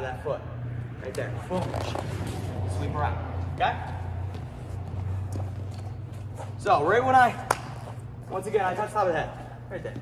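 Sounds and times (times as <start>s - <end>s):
low room hum: 0.0s - 10.0s
footsteps on a mat: 1.4s - 10.0s.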